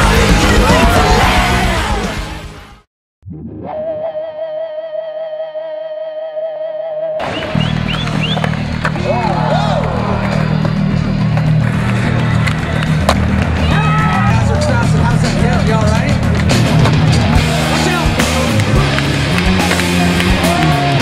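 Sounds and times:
heavy rock song: 0.0 - 2.8, 14.9 - 21.0
voices shouting: 13.6 - 15.0.

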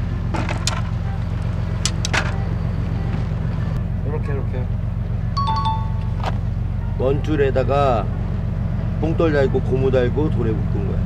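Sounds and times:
low mechanical drone: 0.0 - 11.0.

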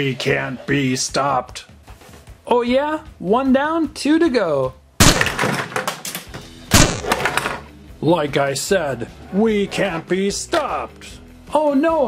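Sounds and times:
plastic toy crashing onto tabletop: 5.0 - 7.7.

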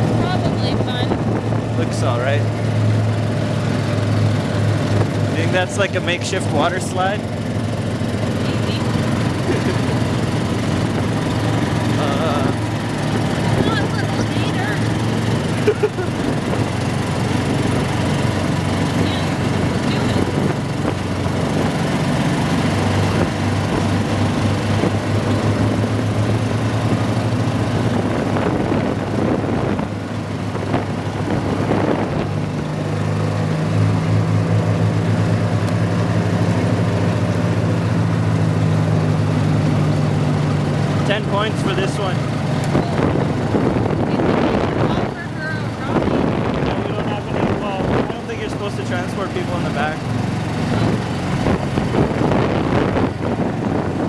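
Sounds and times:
wind noise: 0.0 - 2.0, 27.7 - 32.7, 42.7 - 48.3, 50.7 - 54.0
utility vehicle engine running: 0.0 - 54.0.

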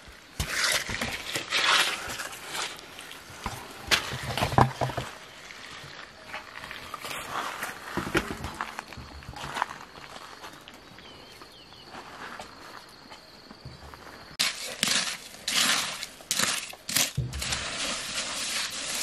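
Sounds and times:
trowel scraping earth: 0.3 - 8.8, 14.4 - 19.0.

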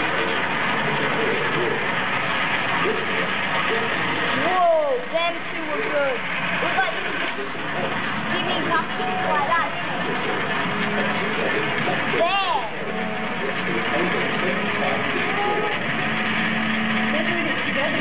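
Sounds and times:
coins rolling in a funnel: 0.0 - 18.0
chatter of voices: 4.2 - 18.0.

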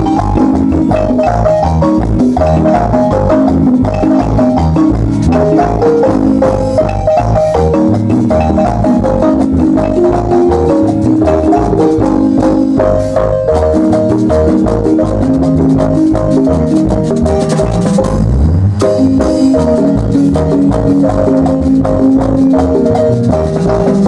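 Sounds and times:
marimba ensemble dance music: 0.0 - 24.0.

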